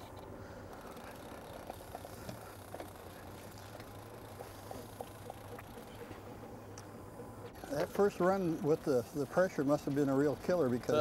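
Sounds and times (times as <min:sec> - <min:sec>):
fishing reel clicks: 0:00.0 - 0:05.9
boat motor idling: 0:00.0 - 0:11.0.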